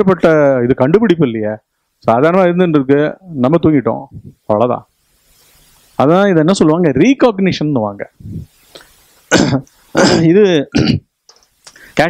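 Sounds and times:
man coughing: 9.3 - 11.1.

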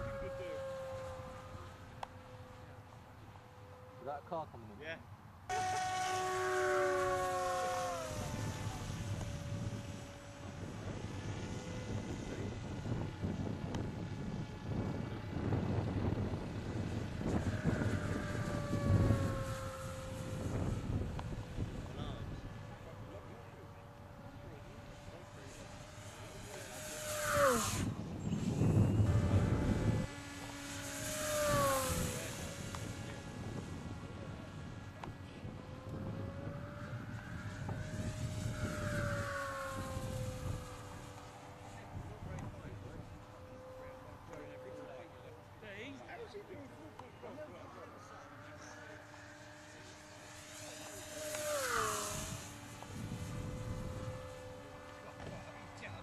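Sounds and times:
model plane motor whining: 0.0 - 56.0
wind rumble on microphone: 6.8 - 45.8, 48.9 - 56.0.

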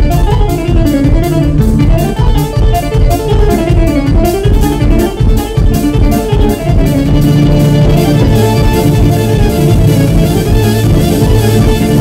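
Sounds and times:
accordion melody: 0.0 - 12.0
drum kit beat: 0.0 - 12.0
electric guitar: 0.0 - 12.0
held bass note: 6.0 - 12.0.

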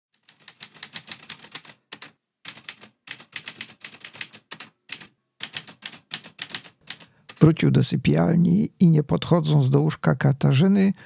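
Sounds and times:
typewriter keystroke clacks: 0.2 - 7.5.

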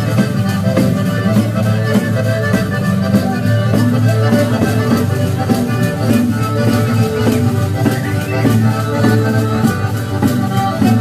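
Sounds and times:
accordion: 0.0 - 11.0
fiddle: 0.0 - 11.0
steady beat: 0.0 - 11.0.

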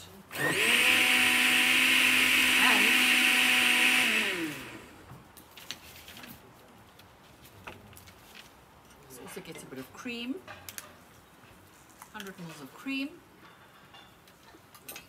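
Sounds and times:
blender motor running: 0.3 - 5.1.

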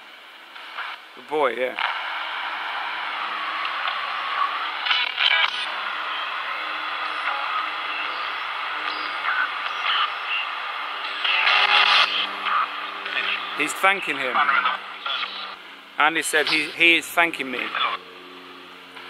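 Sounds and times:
radio static hiss: 0.0 - 19.0
snatches of radio sound: 0.5 - 18.0.

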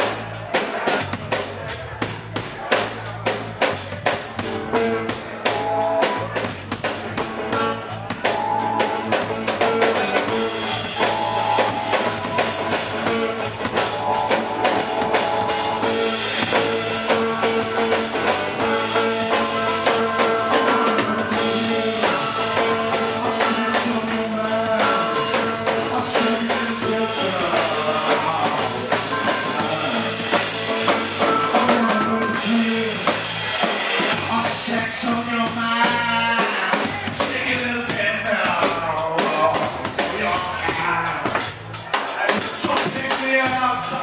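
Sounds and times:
drum kit beat: 0.0 - 44.0
electric guitar: 4.4 - 41.3
held organ notes: 7.4 - 33.0.

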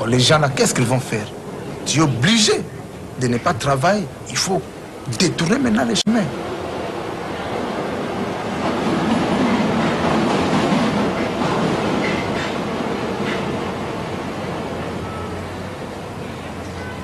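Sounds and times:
train rumble and rattle: 0.0 - 17.0.

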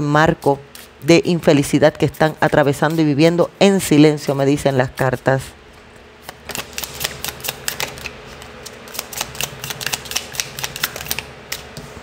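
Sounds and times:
cards being shuffled: 6.2 - 12.0.

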